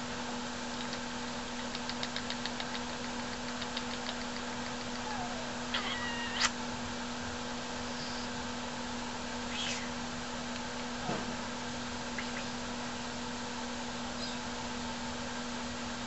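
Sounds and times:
cockatoo squeaky call: 4.9 - 6.6, 14.2 - 14.5.

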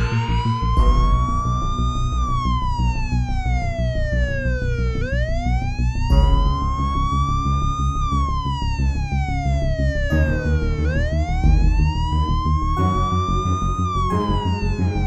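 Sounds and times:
police siren wailing: 0.0 - 15.0
steady-beat music track: 0.0 - 15.0.

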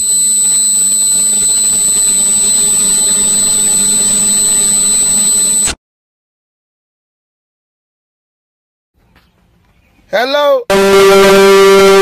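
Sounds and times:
distorted electronic buzzing drone: 0.0 - 5.8, 10.7 - 12.0
thin high whine: 0.0 - 5.8, 10.7 - 12.0.

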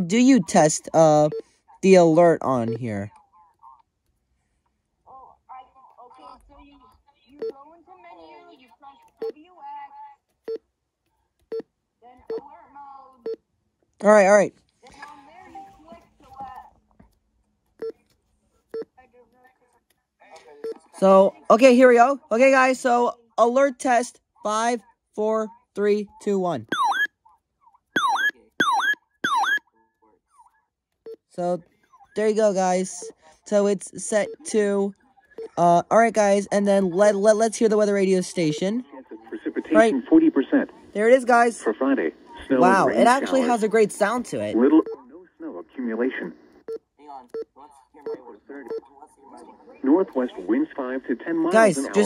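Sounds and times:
weather radio alert chirps: 2.2 - 3.1, 26.6 - 27.1, 28.0 - 29.6
short key beeps: 26.7 - 27.1, 28.0 - 29.6.

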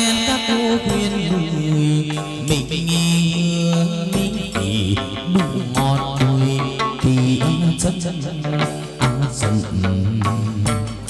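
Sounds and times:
ritual music ensemble: 0.0 - 11.0.

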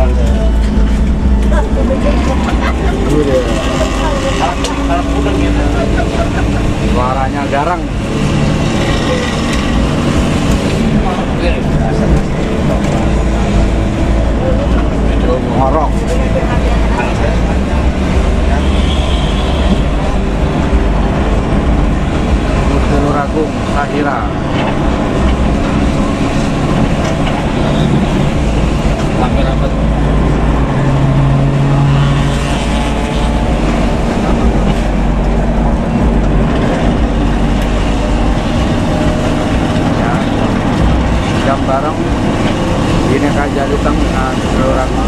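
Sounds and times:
bus engine and road noise: 0.0 - 45.0.

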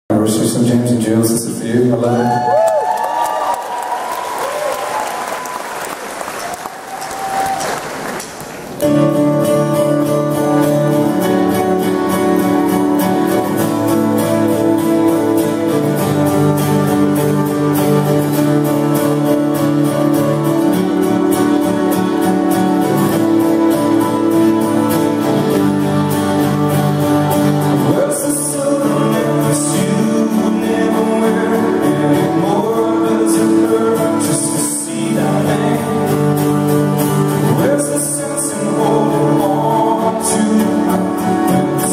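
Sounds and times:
audience applause: 2.2 - 8.8
live rock band: 8.4 - 41.9.

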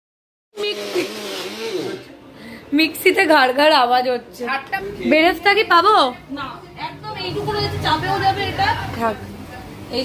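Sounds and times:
mixer grinder running: 0.6 - 2.1
woman's voice: 2.7 - 10.0.

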